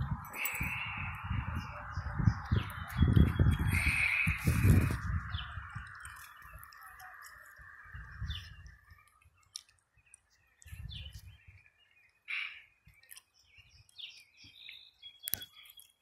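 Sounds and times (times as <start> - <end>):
birds calling: 0.0 - 16.0.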